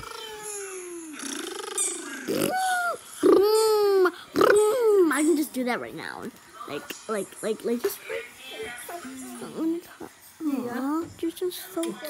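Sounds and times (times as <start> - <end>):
baby fussing: 0.0 - 5.0.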